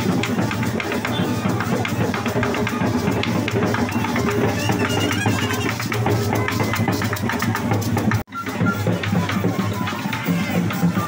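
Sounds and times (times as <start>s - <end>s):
fast folk drumming: 0.0s - 11.0s.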